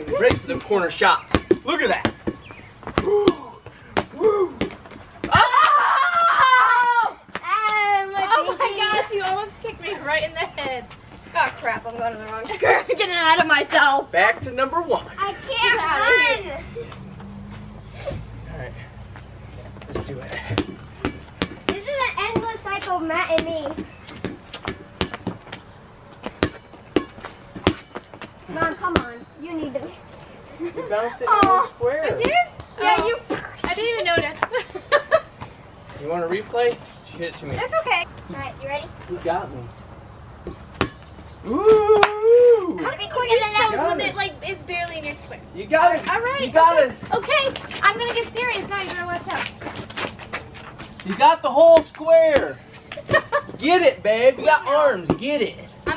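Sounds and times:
rubber ball bouncing on concrete: 0:00.0 - 0:05.6, 0:19.2 - 0:29.9, 0:31.3 - 0:34.6, 0:40.4 - 0:41.3, 0:55.0 - 0:55.9
people laughing and shrieking: 0:05.3 - 0:07.1
hands slapping ball: 0:42.0 - 0:42.2.

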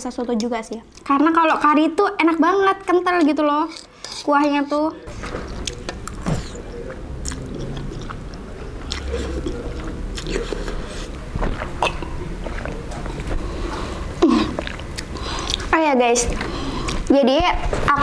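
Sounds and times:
chewing noodles: 0:05.4 - 0:17.1
wet mouth sounds: 0:05.6 - 0:13.3, 0:14.2 - 0:15.7.

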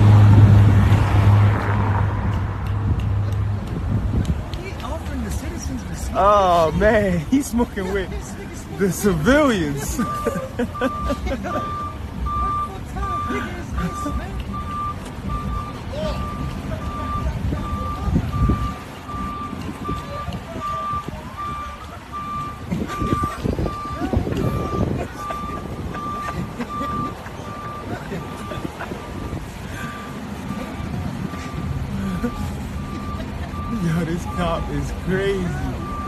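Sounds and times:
low rumble of street traffic: 0:00.0 - 0:36.0
vehicle backup alarm beeping: 0:06.2 - 0:36.0.

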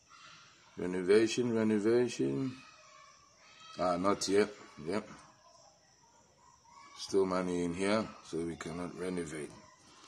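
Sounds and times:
distant animal call: 0:00.0 - 0:10.0.

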